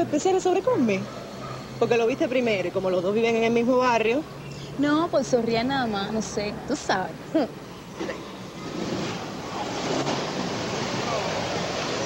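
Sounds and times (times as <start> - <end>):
street traffic rush: 0.0 - 12.0.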